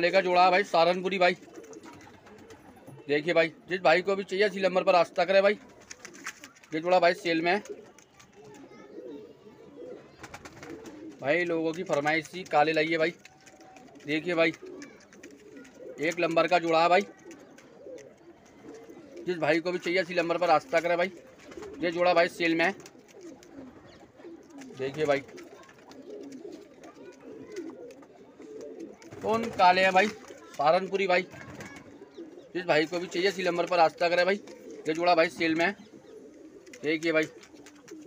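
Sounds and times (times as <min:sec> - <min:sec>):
pigeons cooing: 0:00.0 - 0:38.0.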